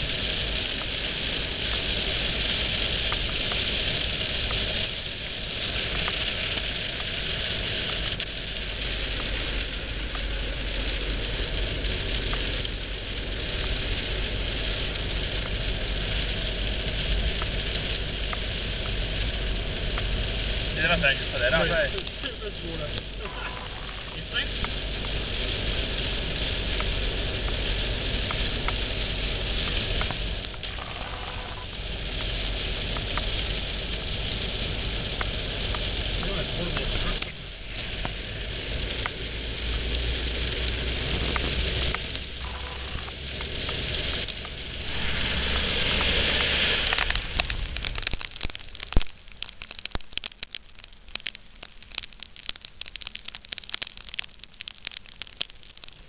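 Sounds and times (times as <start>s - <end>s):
heavy rain on car roof: 0.0s - 56.0s
road and engine rumble: 0.0s - 56.0s.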